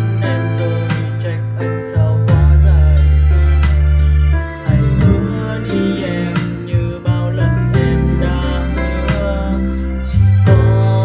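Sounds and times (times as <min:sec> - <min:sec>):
man singing pop song: 0:00.0 - 0:04.0, 0:04.6 - 0:11.0
guitar accompaniment: 0:00.0 - 0:11.0.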